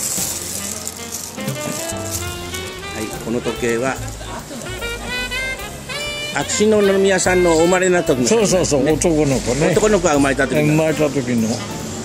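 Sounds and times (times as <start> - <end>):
sleeve and jewellery rattling: 0.0 - 2.7
background music: 0.0 - 12.0.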